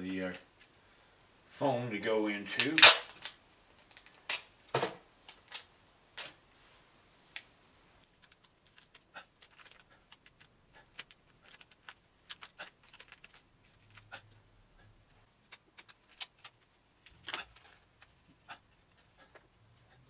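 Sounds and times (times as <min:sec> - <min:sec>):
tape crinkling and crackling: 0:02.6 - 0:06.6, 0:07.3 - 0:14.2, 0:15.4 - 0:19.1.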